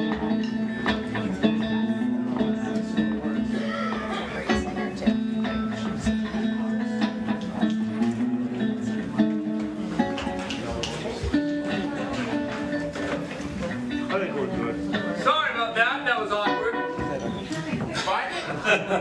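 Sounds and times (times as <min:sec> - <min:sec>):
strummed guitar chords: 0:00.0 - 0:17.9.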